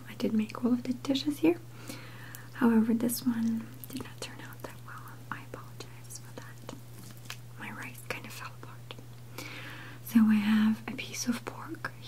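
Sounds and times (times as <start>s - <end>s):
steady low hum: 0.0s - 12.0s
woman whispering: 2.5s - 6.8s, 7.6s - 9.0s, 10.0s - 12.0s.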